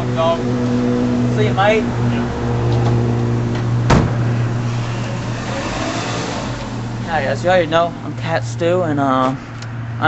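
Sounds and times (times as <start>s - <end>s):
car engine idling: 0.0s - 9.6s
car door shutting: 2.7s - 6.8s.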